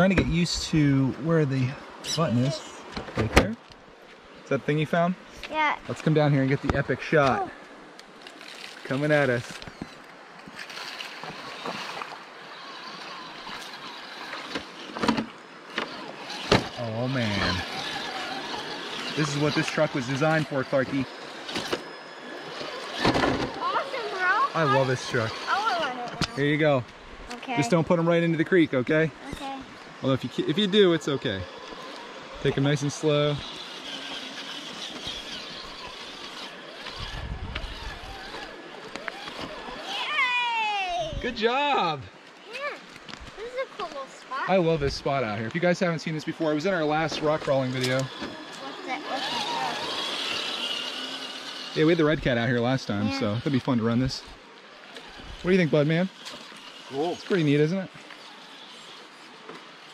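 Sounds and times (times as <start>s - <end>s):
steady outdoor hiss: 0.0s - 59.9s
creek water rushing: 3.8s - 59.9s
rc truck motors whirring: 7.7s - 26.4s, 29.1s - 59.9s
wind rumble on microphone: 37.0s - 38.1s
person exclaiming: 40.0s - 41.3s.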